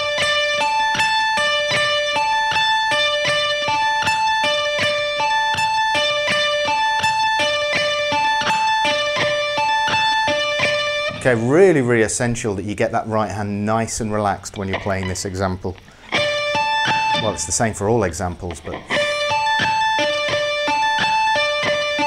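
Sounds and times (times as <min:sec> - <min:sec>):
electric guitar picked notes: 0:00.0 - 0:22.0.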